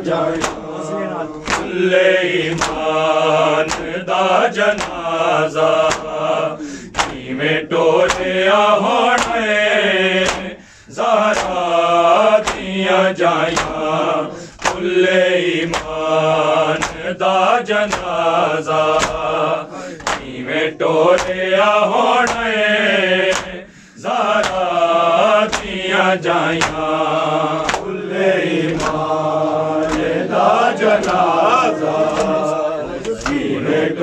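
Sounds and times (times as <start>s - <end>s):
chest-beating slaps: 0.0s - 7.4s, 8.0s - 10.6s, 11.2s - 20.4s, 21.0s - 23.6s, 24.3s - 33.9s
men chanting a lament: 0.0s - 34.0s.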